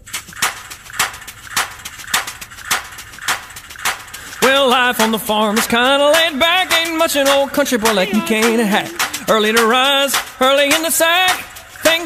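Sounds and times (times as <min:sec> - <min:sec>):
light percussion ticks: 0:00.0 - 0:12.0.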